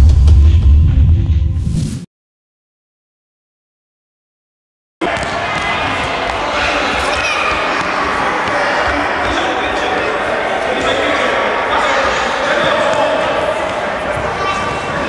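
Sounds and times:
people calling out: 0:05.0 - 0:15.0.

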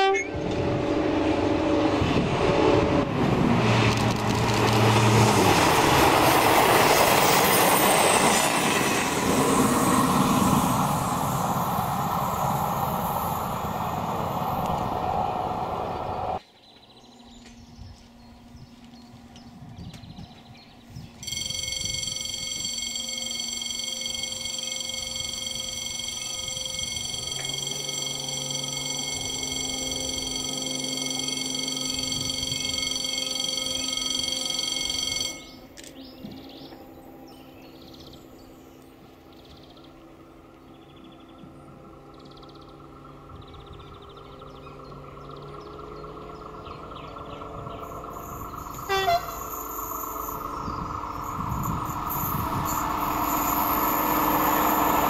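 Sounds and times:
distant diesel railcar engine: 0:00.0 - 0:55.0
high-pitched whine: 0:21.2 - 0:55.0.

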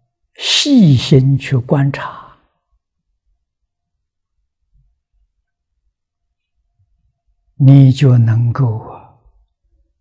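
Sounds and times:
elderly man speaking: 0:00.4 - 0:02.4, 0:07.6 - 0:09.2.

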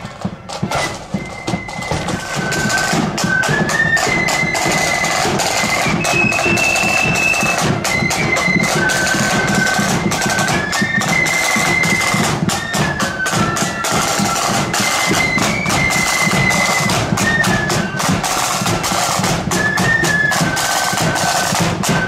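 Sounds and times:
flute melody: 0:00.0 - 0:22.0
side drums in march beat: 0:00.0 - 0:22.0.

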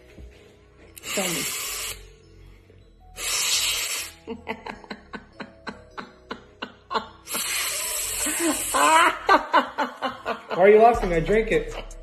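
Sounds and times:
breath blown out hard: 0:03.2 - 0:04.2, 0:07.3 - 0:09.0
woman laughing: 0:04.2 - 0:10.9.

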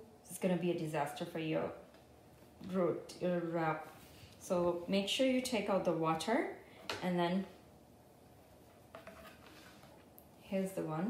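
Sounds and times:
faint handling sound: 0:08.2 - 0:10.3.

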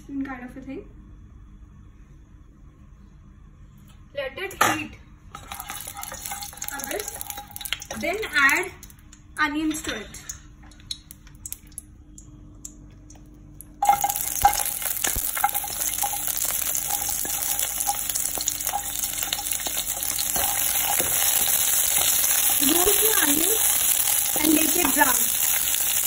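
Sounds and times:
food sizzling in hot oil: 0:05.4 - 0:08.5, 0:13.8 - 0:26.0.

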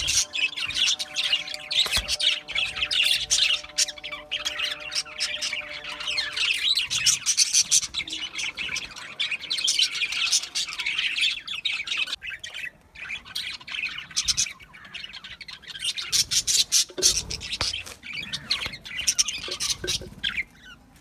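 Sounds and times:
budgerigars chattering and chirping: 0:00.0 - 0:20.8.

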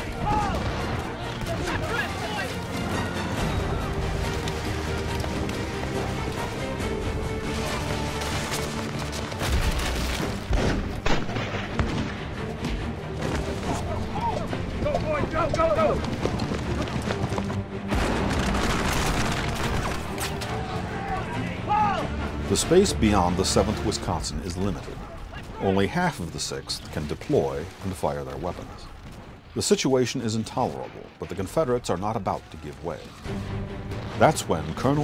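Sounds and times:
men shouting: 0:00.0 - 0:02.6, 0:13.6 - 0:16.0, 0:20.4 - 0:22.2
musket fire: 0:00.0 - 0:02.6, 0:07.4 - 0:12.3, 0:17.9 - 0:20.5
film music score: 0:00.0 - 0:35.0.

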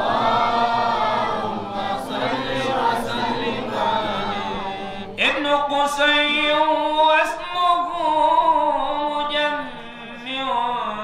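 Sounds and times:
male voices chanting a cappella: 0:00.0 - 0:11.0.

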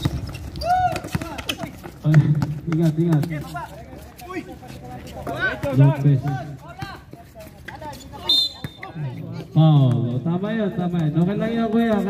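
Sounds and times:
basketball bouncing on concrete: 0:00.0 - 0:12.0
men talking and calling out: 0:00.6 - 0:12.0.

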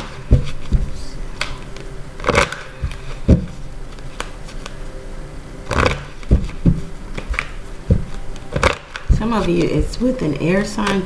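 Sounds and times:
cards being shuffled: 0:00.0 - 0:04.9, 0:05.7 - 0:09.8.

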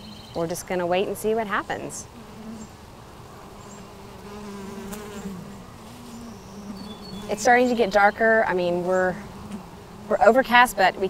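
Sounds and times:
bees droning: 0:00.0 - 0:11.0.

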